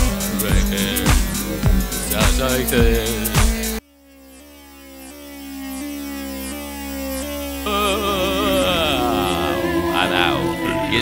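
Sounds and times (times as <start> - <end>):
synthesizer sustained notes: 0.0 - 11.0.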